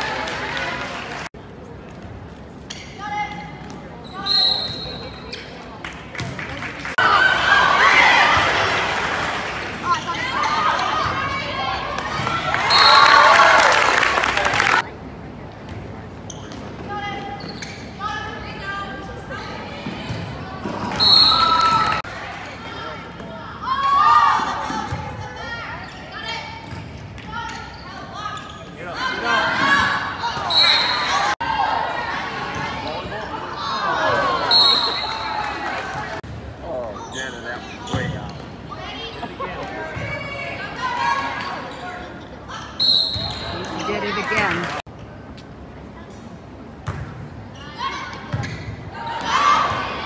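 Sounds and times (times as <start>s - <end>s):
spectators cheering and clapping: 0.0s - 1.3s, 6.4s - 14.9s, 21.4s - 22.1s, 33.9s - 36.2s
voices in reverberant gymnasium: 0.0s - 50.0s
referee's whistle blast: 42.8s - 43.6s
ball bouncing on gym floor: 46.8s - 47.2s.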